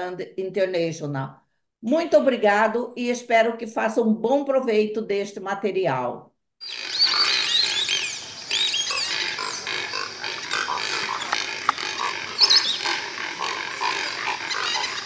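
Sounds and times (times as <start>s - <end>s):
high chirping calls: 6.6s - 15.0s
short repeated animal calls: 6.6s - 15.0s.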